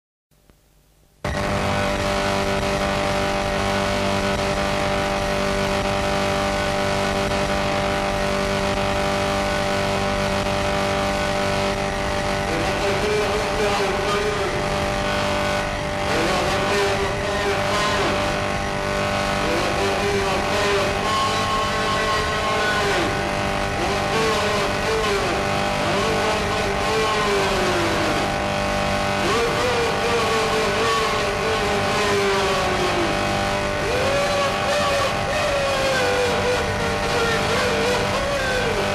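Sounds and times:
distorted noise wall: 0.3s - 38.9s
droning tones: 0.5s - 38.9s.

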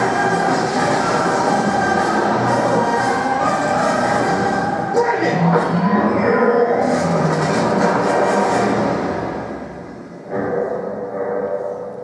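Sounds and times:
action movie music: 0.0s - 11.9s.

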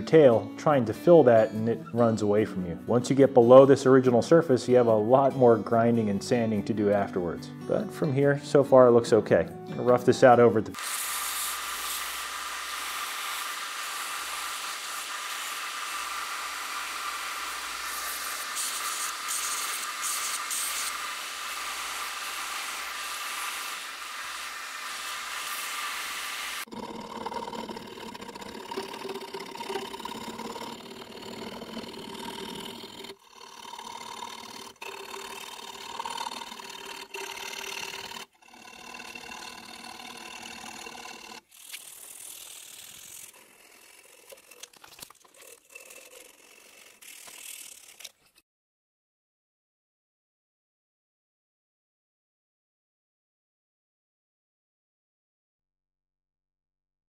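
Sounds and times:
hand filing metal: 10.7s - 48.3s
belt grinder grinding metal: 10.7s - 48.4s.

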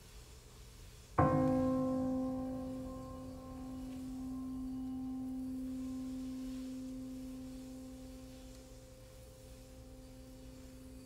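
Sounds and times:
held musical tone: 1.2s - 11.0s.

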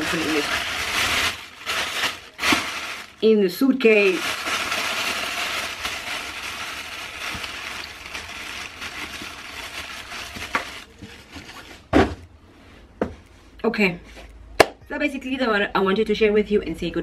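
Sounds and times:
plastic bag rustling: 0.0s - 12.2s
thump: 11.9s - 12.2s.

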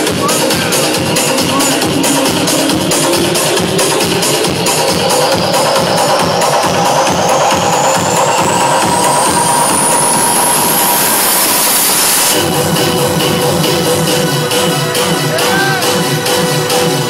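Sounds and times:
loud trance dance music: 0.0s - 17.0s
rising noise sweep: 3.8s - 12.7s.

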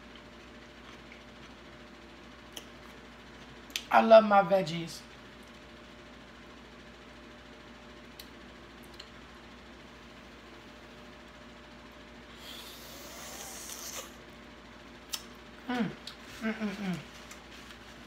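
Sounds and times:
faint steady hum: 0.0s - 18.0s
soft hissing slurp of eating: 12.3s - 14.2s
person humming mm: 12.4s - 14.2s, 15.6s - 17.1s.

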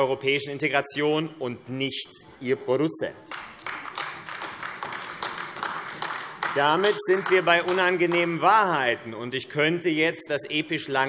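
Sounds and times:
group applauding: 3.2s - 8.5s
person speaking: 6.5s - 11.0s.

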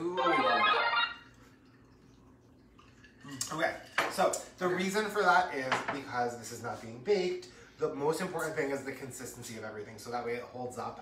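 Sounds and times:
pitched sound effect: 0.0s - 1.3s.

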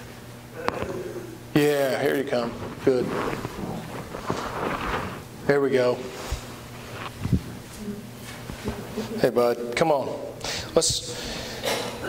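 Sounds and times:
children's footsteps and shuffling: 2.1s - 5.4s, 6.0s - 9.2s.

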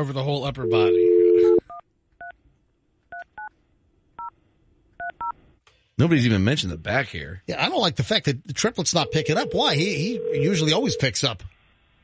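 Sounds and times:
telephone dial tone: 9.1s - 11.0s.

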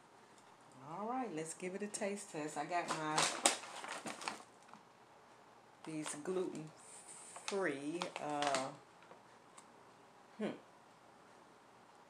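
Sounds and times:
plastic bag crinkling: 2.7s - 4.8s, 7.2s - 8.8s.

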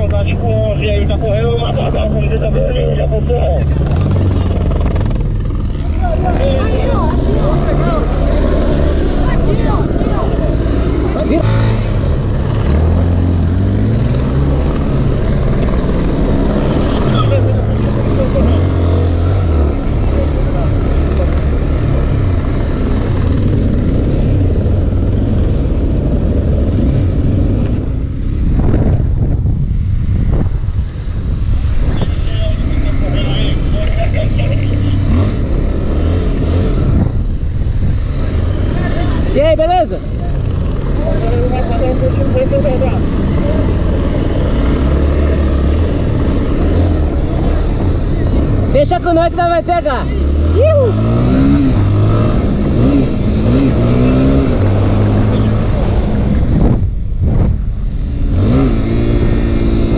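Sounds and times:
motorcycle engine running: 0.9s - 59.9s
wind rush on microphone: 22.1s - 34.2s, 35.0s - 48.8s, 50.5s - 59.9s.

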